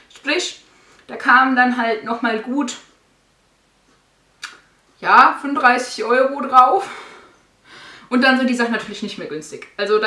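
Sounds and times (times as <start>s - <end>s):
soft intake of breath: 6.9s - 8.1s.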